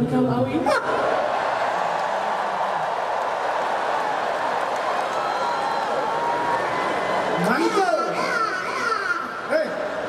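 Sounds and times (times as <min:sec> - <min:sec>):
audience cheering and laughing: 0:00.7 - 0:10.0.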